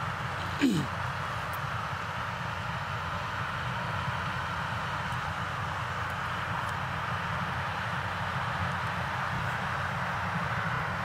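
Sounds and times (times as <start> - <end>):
combine harvester running: 0.0 - 11.0.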